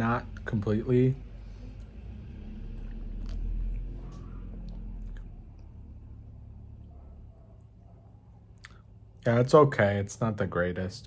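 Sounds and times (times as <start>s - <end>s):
person sipping and swallowing: 1.8s - 5.3s.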